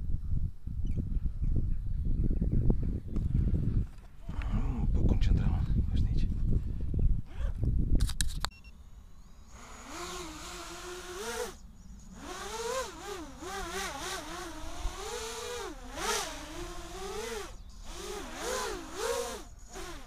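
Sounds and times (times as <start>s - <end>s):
drone motors whining: 8.8s - 20.0s.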